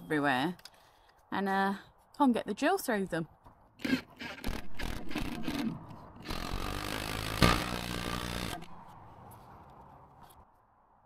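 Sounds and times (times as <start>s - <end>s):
cordless drill boring into wood: 3.8s - 8.8s.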